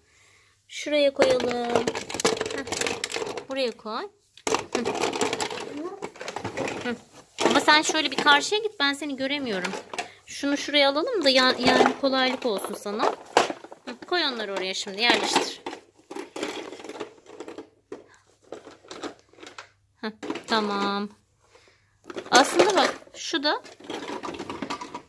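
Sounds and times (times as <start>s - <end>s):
plastic toys clattering in tray: 1.2s - 3.8s, 4.4s - 21.1s, 22.0s - 25.0s.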